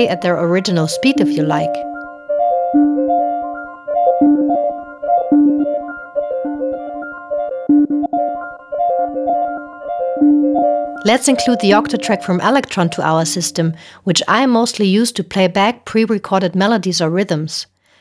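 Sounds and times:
synthesizer melodic pattern: 0:00.0 - 0:13.8.

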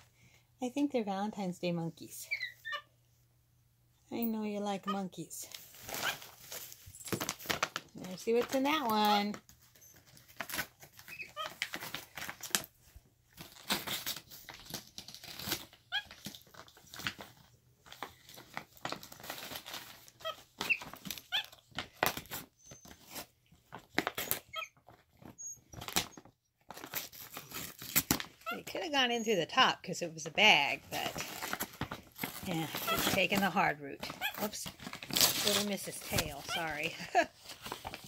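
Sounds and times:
plastic bag crinkling and rustling: 0:05.3 - 0:28.8, 0:30.4 - 0:38.0.

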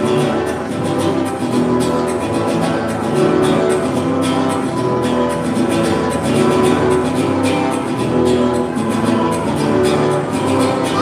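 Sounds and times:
guitar accompaniment: 0:00.0 - 0:11.0.

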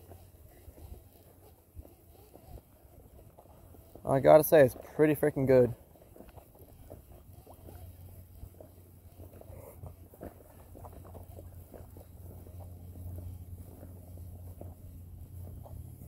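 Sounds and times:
fishing reel clicking: 0:00.0 - 0:15.8
steady low hum: 0:00.0 - 0:16.0.

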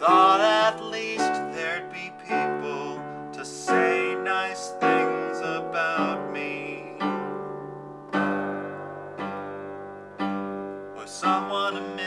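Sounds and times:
piano chords: 0:00.0 - 0:12.0.

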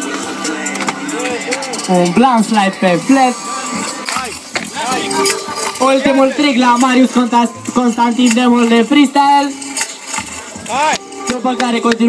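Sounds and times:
announcer shouting: 0:04.8 - 0:06.8.

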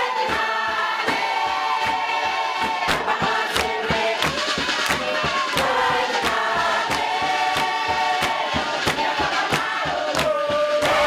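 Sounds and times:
crowd singing in chorus: 0:00.0 - 0:11.0
hand claps: 0:00.0 - 0:11.0.

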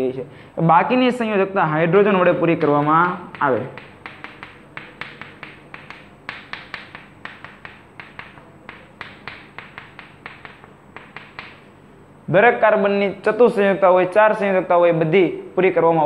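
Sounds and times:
chalk tapping on chalkboard: 0:02.2 - 0:11.7.

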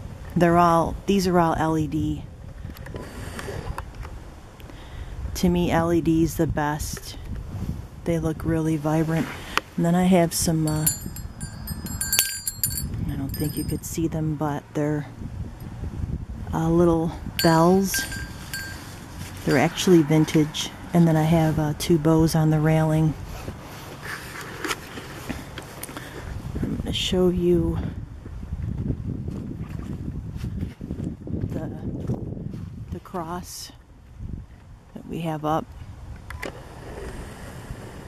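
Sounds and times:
wind buffeting microphone: 0:05.0 - 0:23.6, 0:26.2 - 0:33.1, 0:33.9 - 0:34.9
sharp bell clink: 0:10.6 - 0:13.9, 0:17.4 - 0:20.0
small bells jingling: 0:10.6 - 0:14.0, 0:17.4 - 0:20.1.

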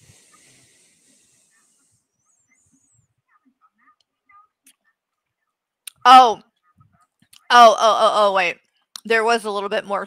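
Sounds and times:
faint hiss: 0:00.0 - 0:03.1
faint soft sounds: 0:00.0 - 0:05.8.

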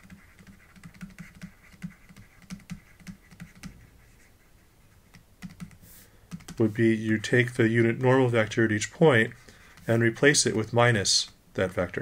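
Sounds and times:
stylus tapping and scratching: 0:00.0 - 0:12.0.

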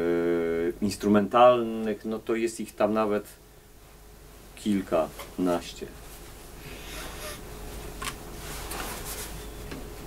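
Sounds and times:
faint steady hum: 0:00.0 - 0:10.0
instrument handling rustles: 0:07.7 - 0:09.7.

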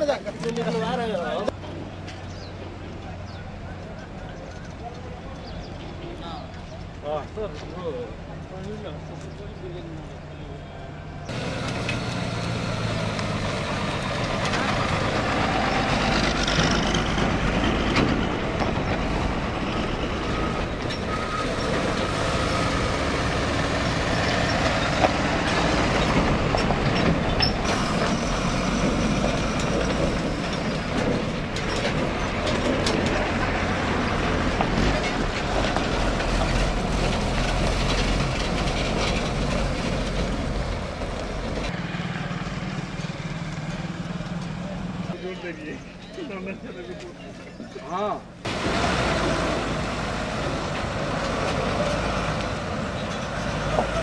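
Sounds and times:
diesel trucks driving past: 0:00.0 - 0:54.0
traffic noise: 0:00.0 - 0:54.0.

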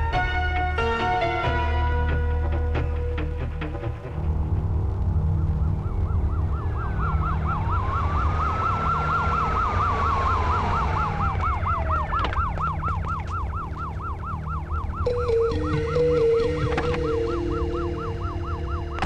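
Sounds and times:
low rumble: 0:02.6 - 0:19.0
slower siren wail: 0:05.3 - 0:19.0
vehicle siren warbling: 0:05.4 - 0:19.0.

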